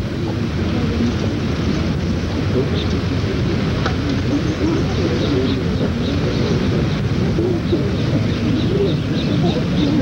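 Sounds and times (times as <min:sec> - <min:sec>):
birds chirping: 0:04.4 - 0:10.0.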